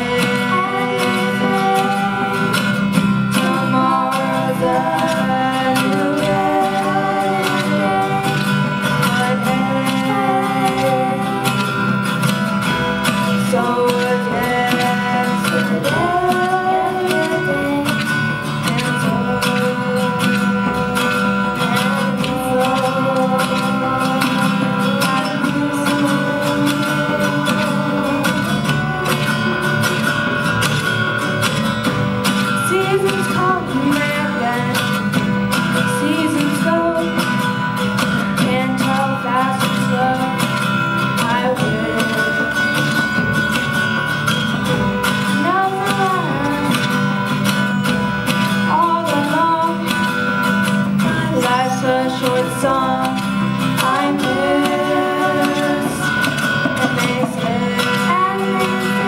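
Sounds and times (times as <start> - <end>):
acoustic guitars strumming: 0.0 - 59.0
voices singing: 0.0 - 59.0.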